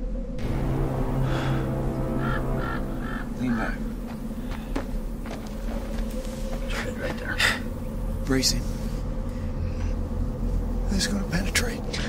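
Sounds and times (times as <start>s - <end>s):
low music drone: 0.0s - 12.0s
bird cawing: 1.2s - 8.1s.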